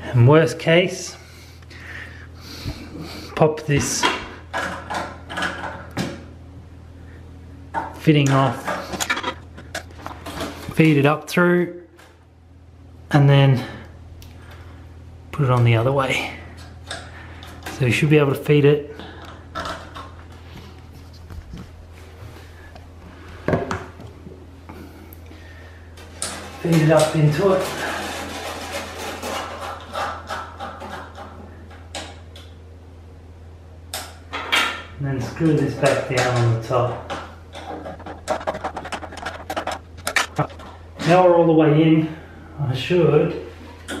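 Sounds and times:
steady low hum: 0.0s - 44.0s
knocks clicks and scrapes of handling: 3.8s - 6.3s, 7.7s - 10.9s, 26.0s - 32.5s, 34.0s - 41.2s.

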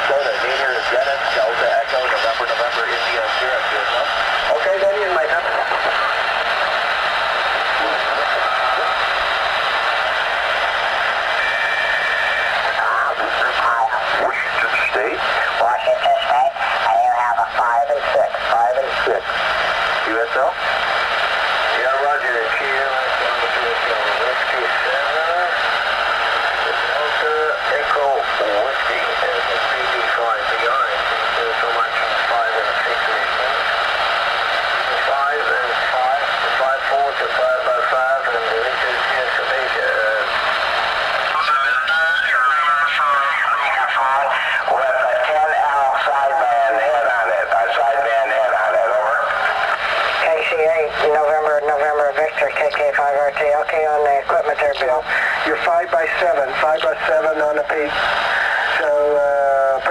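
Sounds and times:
static hiss: 0.0s - 59.9s
voices over radio speaker: 0.0s - 59.9s.

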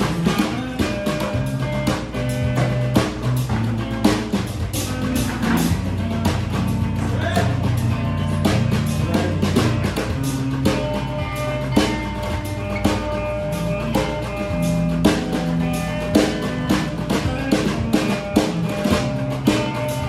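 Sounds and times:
drum kit beat: 0.0s - 20.0s
electric guitar: 0.0s - 20.0s.

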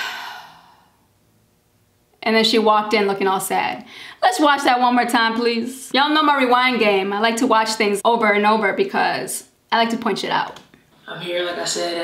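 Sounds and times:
woman sighing: 0.0s - 1.0s.

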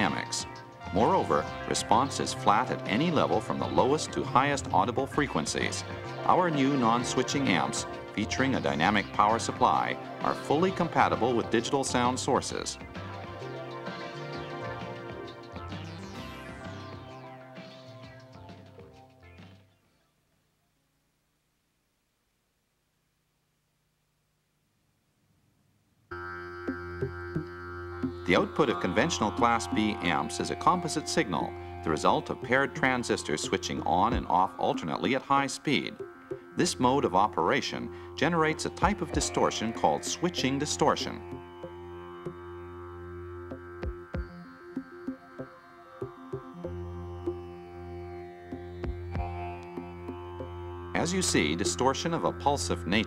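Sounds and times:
droning chord music: 0.0s - 19.4s, 26.1s - 53.0s.

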